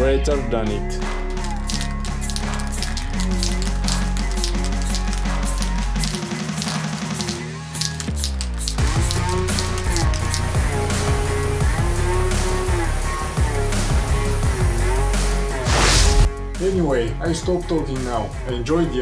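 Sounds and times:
background music with steady beat: 0:00.0 - 0:19.0
falling sweep: 0:15.6 - 0:16.3.

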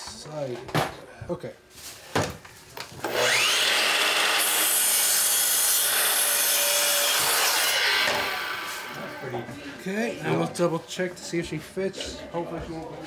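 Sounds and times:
miter saw cutting wood: 0:03.0 - 0:09.5.

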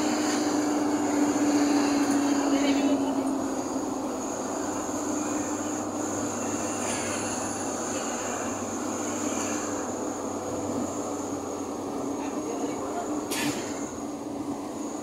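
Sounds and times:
high steady whine: 0:00.0 - 0:15.0
vehicle engine and road noise: 0:00.0 - 0:15.0.

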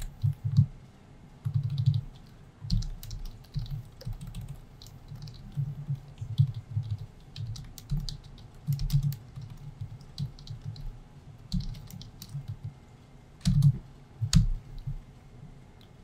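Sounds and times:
typing on keyboard: 0:00.0 - 0:00.7, 0:01.4 - 0:12.8, 0:13.4 - 0:15.0.

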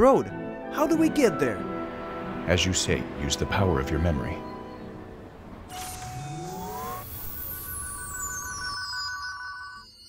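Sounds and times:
held tone with upward glides: 0:05.7 - 0:10.0
high shimmering falling sweep: 0:05.7 - 0:10.0.

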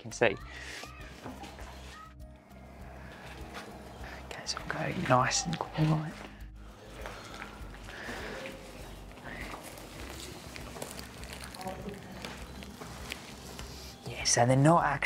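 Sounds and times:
footsteps in dry leaves: 0:03.0 - 0:14.1
faint hushed voices: 0:05.6 - 0:14.1.

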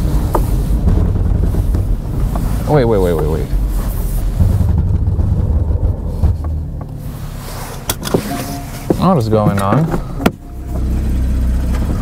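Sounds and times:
low uneven car judder: 0:00.0 - 0:12.0
tires skipping knocks: 0:00.0 - 0:12.0.

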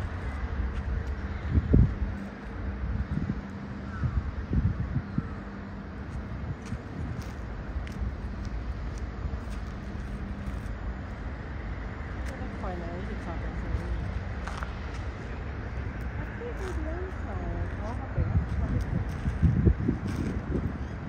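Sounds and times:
distant jet engines rumbling: 0:00.0 - 0:21.0.

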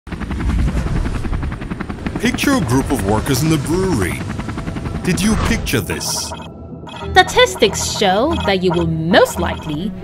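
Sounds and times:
helicopter rotor chopping: 0:00.1 - 0:10.0.

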